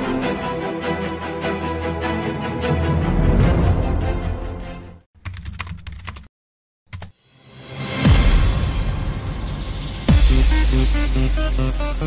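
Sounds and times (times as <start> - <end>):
music: 0.0 - 5.1, 7.2 - 12.0
keyboard typing clicks: 5.2 - 6.3, 6.9 - 7.2.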